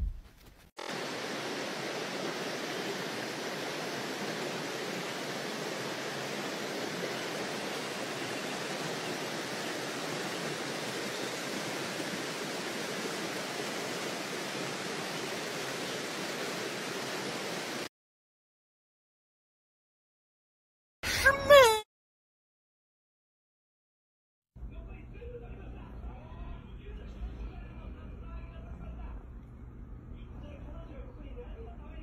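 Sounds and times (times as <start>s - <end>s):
running water rushing: 0.8s - 17.9s.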